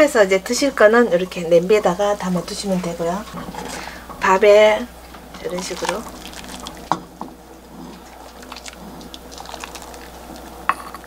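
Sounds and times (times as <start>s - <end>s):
broth pouring and splashing: 5.1s - 10.7s.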